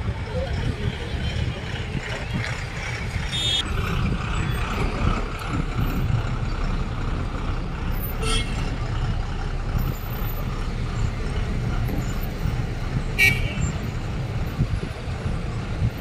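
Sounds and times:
bus engine rumble: 0.0s - 16.0s.

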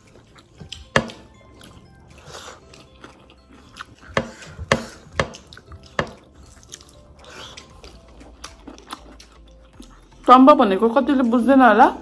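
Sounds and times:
person chewing food: 0.0s - 10.3s.

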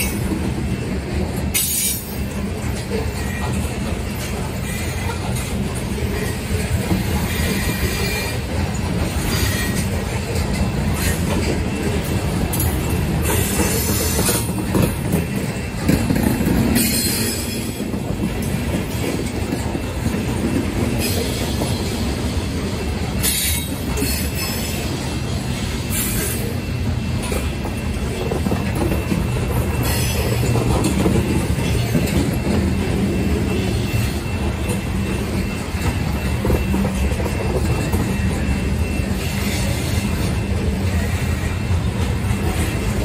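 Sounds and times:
train wheels rumbling on rail: 0.0s - 43.0s.

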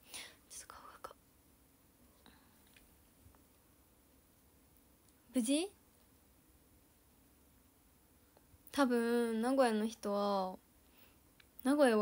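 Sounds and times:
woman whispering: 0.3s - 1.2s.

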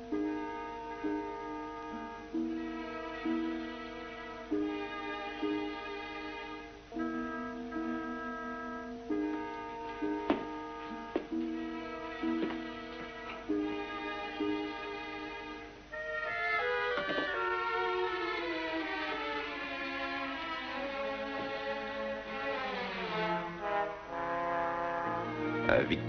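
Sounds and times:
orchestral strings and brass: 0.0s - 26.0s.

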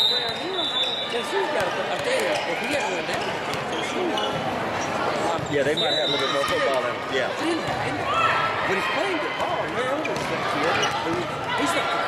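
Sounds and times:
referee's whistle: 0.0s - 1.2s, 5.7s - 6.4s.

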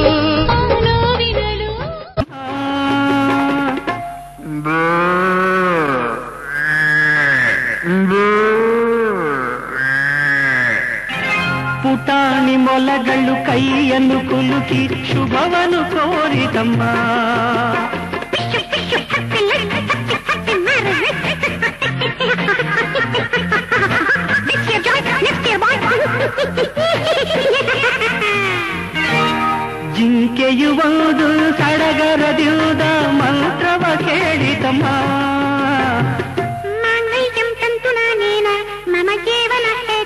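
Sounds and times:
man singing long bending notes: 2.2s - 19.3s, 29.8s - 36.4s
wind instrument melody: 28.6s - 29.9s.

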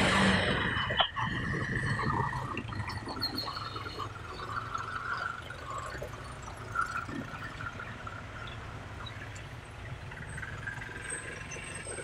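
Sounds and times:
motorcycle engines running: 0.0s - 0.8s, 1.7s - 12.0s.

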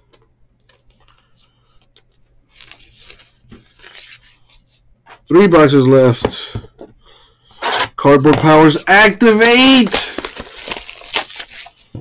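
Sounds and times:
plastic card sleeve rustling: 0.6s - 4.9s, 8.7s - 12.0s.

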